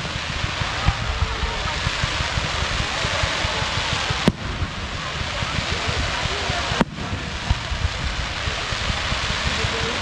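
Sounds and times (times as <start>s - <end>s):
fireworks hissing: 0.0s - 10.0s
low fireworks thumping: 0.0s - 10.0s
sharp loud firework report: 0.0s - 10.0s.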